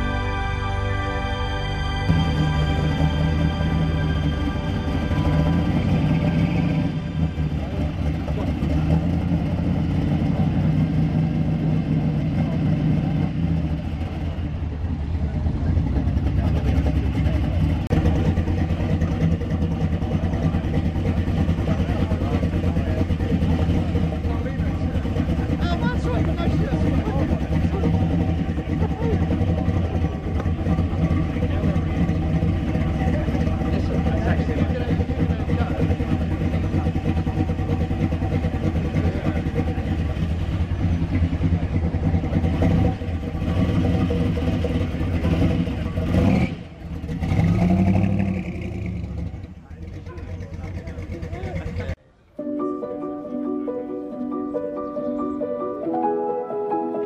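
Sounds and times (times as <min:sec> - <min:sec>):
car engine idling and revving: 0:00.0 - 0:52.2.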